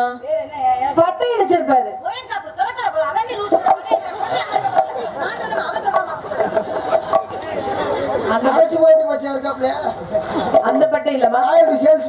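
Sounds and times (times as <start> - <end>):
speech through loudspeakers: 7.4 - 12.0.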